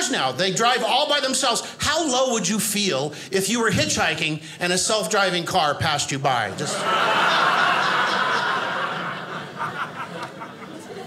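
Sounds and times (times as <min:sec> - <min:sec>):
audience laughing: 0:06.5 - 0:11.0.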